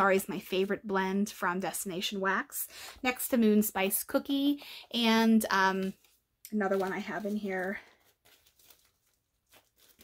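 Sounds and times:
plastic packaging crinkling: 0:05.8 - 0:10.0.

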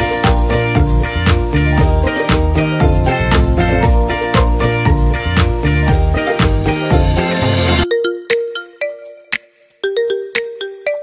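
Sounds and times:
light clicking beat: 0:00.1 - 0:07.1.

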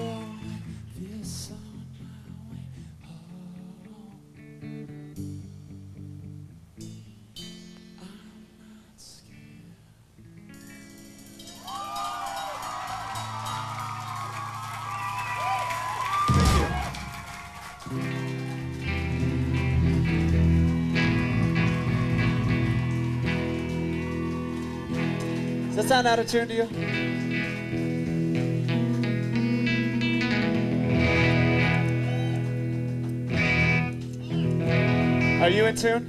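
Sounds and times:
electric guitar chords: 0:00.0 - 0:36.0
electric guitar notes: 0:10.2 - 0:36.0
crowd cheering and screaming: 0:11.4 - 0:27.9, 0:30.9 - 0:32.8.

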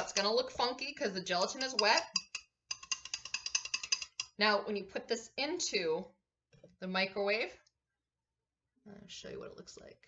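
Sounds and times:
wire whisk clicking against glass jug: 0:01.3 - 0:04.4.

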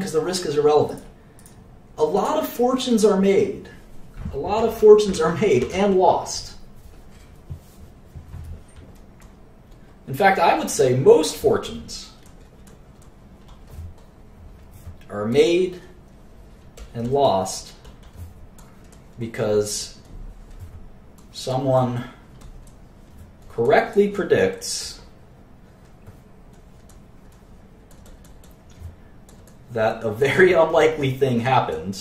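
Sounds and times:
computer mouse clicking: 0:00.9 - 0:01.6, 0:12.2 - 0:15.1, 0:16.1 - 0:19.2, 0:22.3 - 0:24.0, 0:25.7 - 0:29.7
computer mouse clicks: 0:25.8 - 0:29.7.

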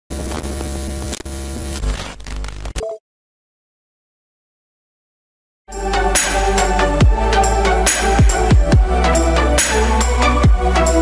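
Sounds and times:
loud electric hum and buzz: 0:00.1 - 0:02.8.

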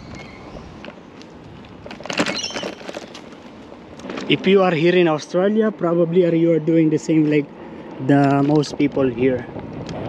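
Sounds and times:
wind on microphone: 0:00.0 - 0:02.8, 0:08.6 - 0:10.0
bike rolling on paved road: 0:00.0 - 0:10.0.

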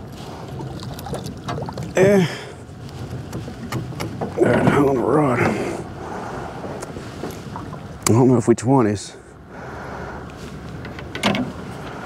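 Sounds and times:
water noise: 0:00.0 - 0:12.0
wind: 0:00.0 - 0:12.0.

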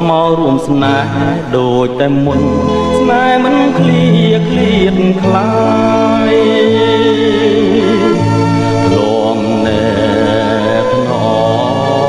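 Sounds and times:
pop song with vibrato vocals: 0:00.0 - 0:12.0.

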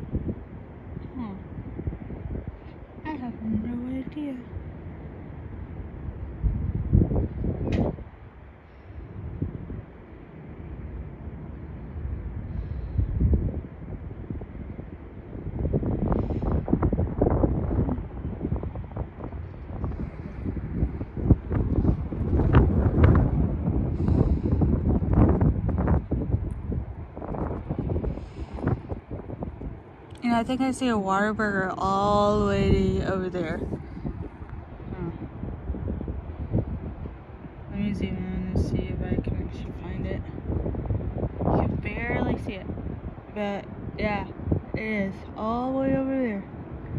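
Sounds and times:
wind buffeting microphone: 0:00.0 - 0:46.9.

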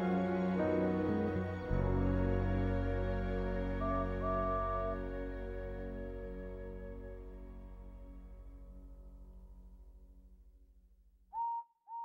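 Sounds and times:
soft song: 0:00.0 - 0:10.2.

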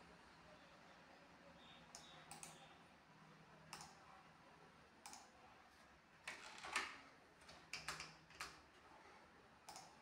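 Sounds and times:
faint sharp clicks: 0:09.6 - 0:10.0.

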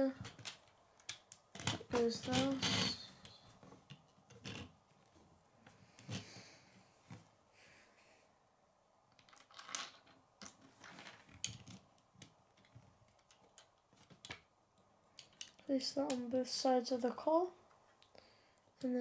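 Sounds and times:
plastic pieces clicking on wood: 0:00.2 - 0:04.7, 0:09.1 - 0:14.5, 0:15.1 - 0:16.2.

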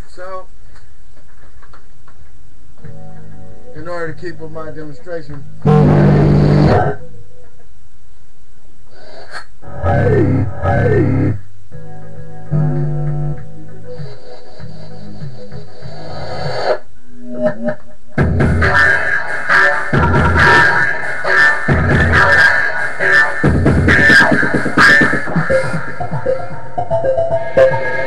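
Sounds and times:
electronic beat with synth: 0:09.9 - 0:28.0.

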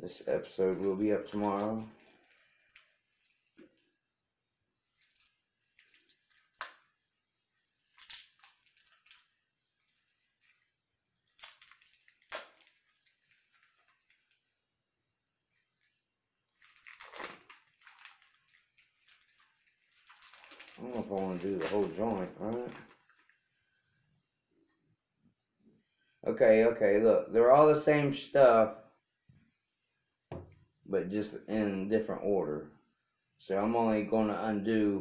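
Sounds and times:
plastic wrapping crinkling and tearing: 0:00.0 - 0:03.9, 0:04.7 - 0:14.5, 0:15.5 - 0:23.4.

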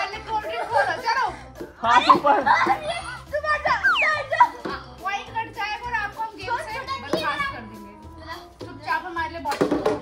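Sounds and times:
children talking and exclaiming: 0:00.0 - 0:10.0.

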